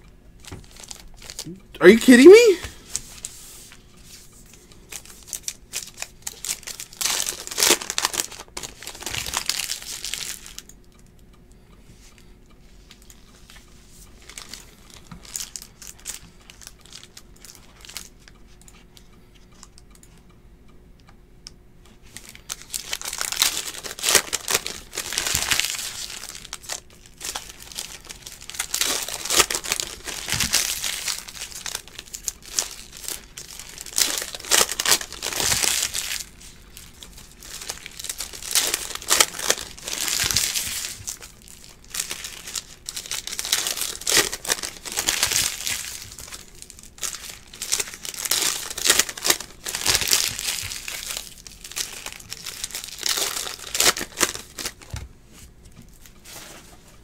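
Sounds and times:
foil wrappers crinkling and tearing: 0:00.4 - 0:01.5, 0:04.9 - 0:10.7, 0:14.2 - 0:18.2, 0:22.0 - 0:56.5.

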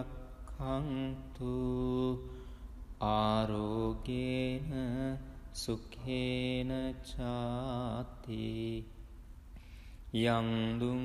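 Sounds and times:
breath: 0:02.2 - 0:02.8, 0:09.5 - 0:10.1
man chanting on one note: 0:10.1 - 0:11.0.

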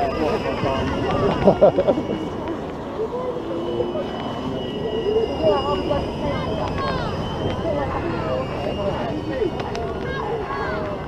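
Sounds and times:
machinery rumble: 0:00.0 - 0:11.0
people chattering: 0:00.0 - 0:11.0
thin high whine: 0:00.0 - 0:11.0.

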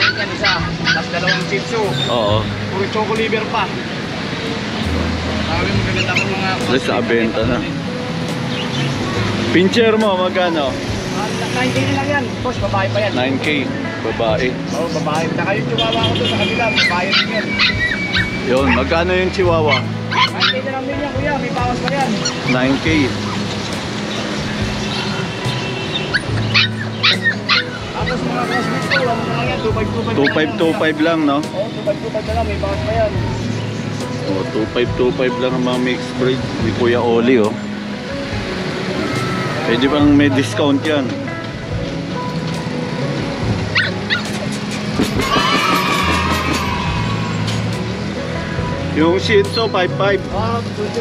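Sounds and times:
puppy yelping: 0:00.0 - 0:01.5, 0:16.7 - 0:18.9, 0:19.7 - 0:20.7, 0:22.1 - 0:22.6, 0:23.2 - 0:23.5, 0:26.1 - 0:29.6, 0:30.2 - 0:30.7, 0:43.7 - 0:47.6
dog yipping: 0:00.0 - 0:02.1, 0:16.7 - 0:19.0, 0:19.7 - 0:20.7, 0:22.1 - 0:22.6, 0:23.2 - 0:23.5, 0:26.0 - 0:29.5, 0:30.2 - 0:30.7, 0:43.7 - 0:47.6
background music with bass: 0:00.0 - 0:51.0
puppy whining: 0:16.8 - 0:18.9, 0:26.1 - 0:29.6, 0:43.7 - 0:46.8.

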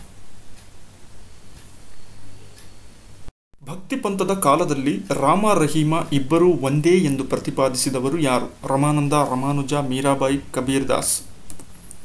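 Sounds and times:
man talking: 0:03.6 - 0:11.3.

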